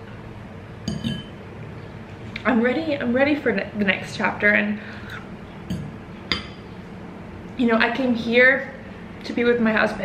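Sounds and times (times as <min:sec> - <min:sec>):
fork clinking against glass bowl: 0:00.9 - 0:01.4.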